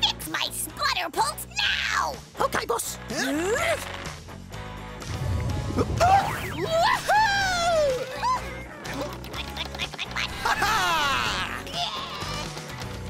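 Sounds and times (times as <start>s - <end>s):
cartoon background music: 0.0s - 13.0s
gliding voice-like whoop: 6.0s - 8.4s.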